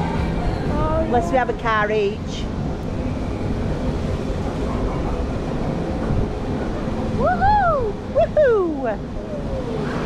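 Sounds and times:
ride running noise: 0:00.0 - 0:10.0
wind over microphone: 0:00.0 - 0:10.0.

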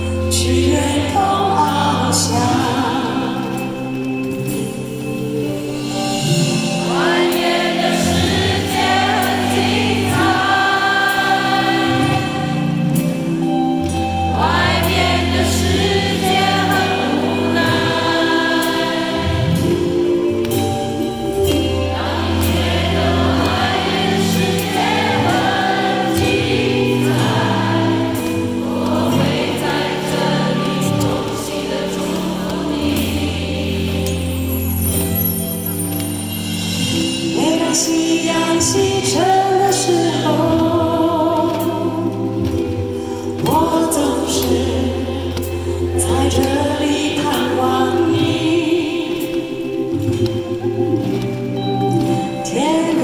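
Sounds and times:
choir-like vocals: 0:00.0 - 0:05.0, 0:06.0 - 0:53.0.

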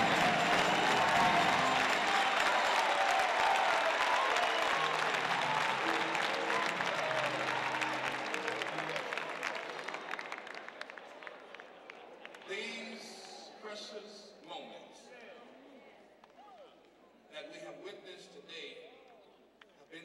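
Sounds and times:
audience applauding: 0:00.0 - 0:12.7.

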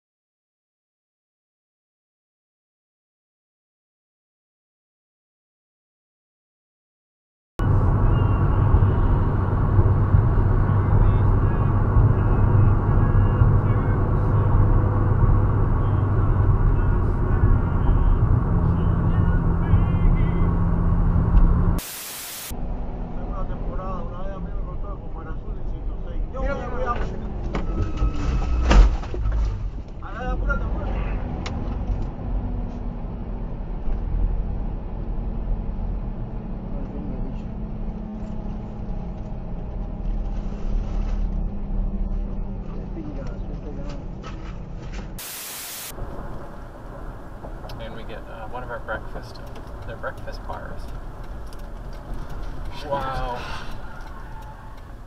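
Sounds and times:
engine and road rumble: 0:07.6 - 0:55.0
voices: 0:10.5 - 0:20.6, 0:47.7 - 0:51.2, 0:52.2 - 0:55.0
bursts of hiss: 0:21.8 - 0:22.5, 0:45.2 - 0:45.9.

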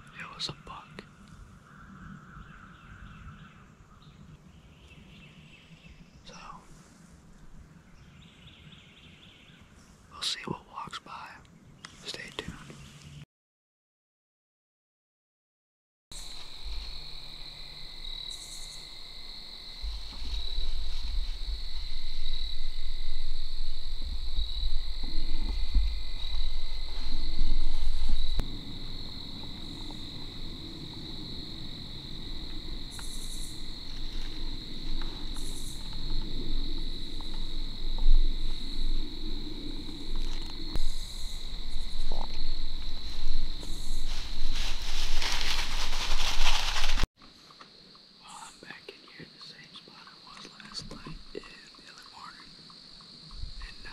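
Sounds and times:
insects trilling: 0:00.0 - 0:11.4, 0:16.2 - 0:53.9
rustling: 0:16.2 - 0:17.5, 0:19.7 - 0:47.6
low rumble on microphone: 0:19.7 - 0:47.0.

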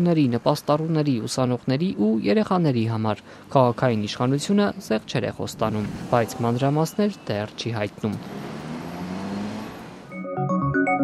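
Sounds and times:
street traffic rumble: 0:00.0 - 0:10.2
low engine hum: 0:03.9 - 0:10.1.

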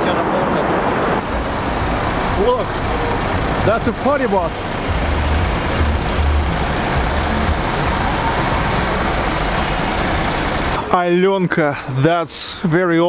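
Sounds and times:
bus engine rumble passing: 0:00.0 - 0:10.8
city traffic noise: 0:00.0 - 0:11.9.

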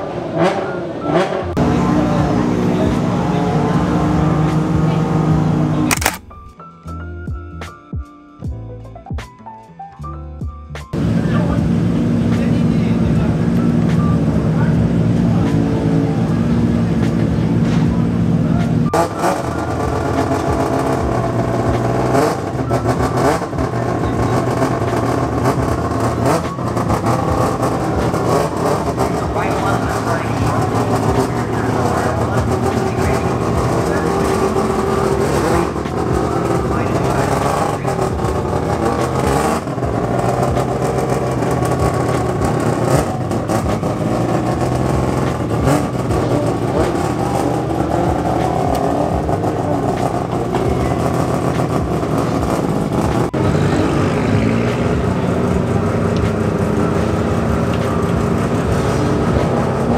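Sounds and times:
car engine running: 0:00.0 - 0:07.4, 0:10.9 - 0:59.9
people talking: 0:00.4 - 0:06.2, 0:11.0 - 0:21.8, 0:22.6 - 0:41.3, 0:45.0 - 0:58.2.

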